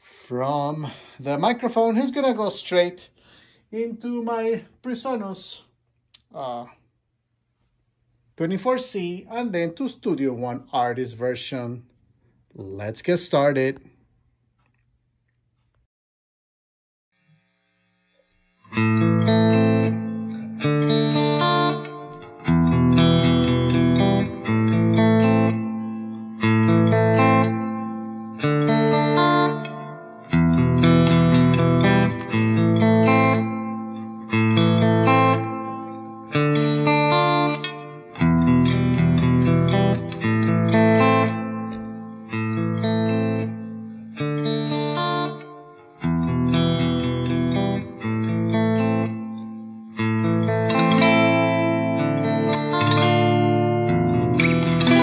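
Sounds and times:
electric guitar chords with reverb: 18.6s - 55.0s.

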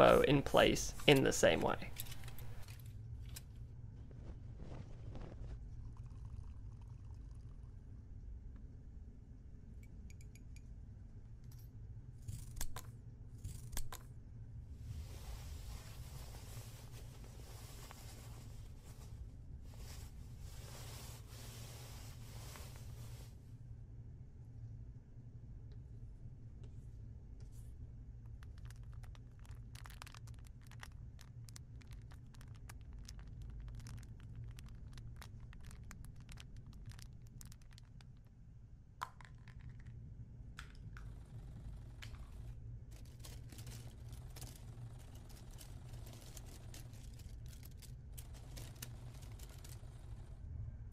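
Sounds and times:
cloth rustling: 0.0s - 5.7s, 14.9s - 23.4s
steady low hum: 0.0s - 50.9s
scissors cutting thread: 12.3s - 14.0s.

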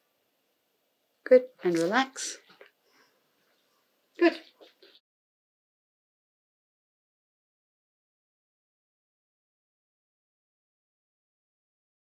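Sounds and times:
faint small sounds: 0.0s - 5.0s.

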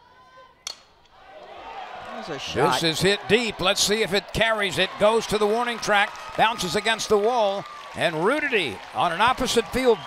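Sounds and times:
crowd noise: 0.0s - 10.0s
bat cracking a ball: 0.6s - 1.2s.

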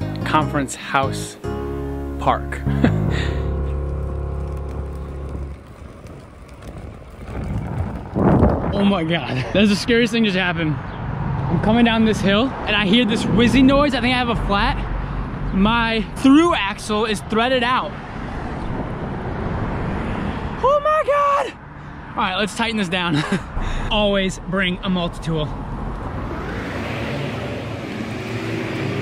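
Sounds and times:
guitar music: 0.0s - 5.6s
road traffic rumble: 0.0s - 29.0s
bicycle tyre noise: 3.1s - 9.2s
wind noise on microphone: 4.8s - 9.2s.

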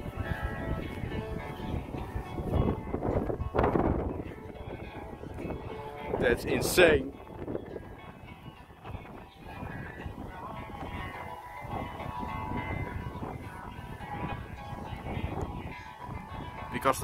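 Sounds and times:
distant music from a speaker: 0.0s - 17.0s
wind rumbling on microphone: 0.0s - 17.0s.

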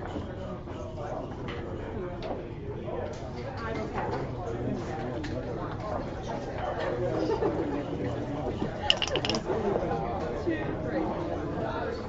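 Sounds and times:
dice rattling on a board: 8.9s - 9.4s.

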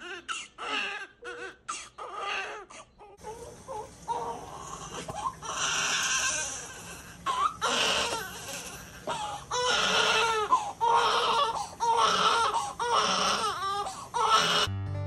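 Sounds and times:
newborn baby crying: 0.0s - 14.7s
acoustic guitar music: 14.7s - 15.0s.

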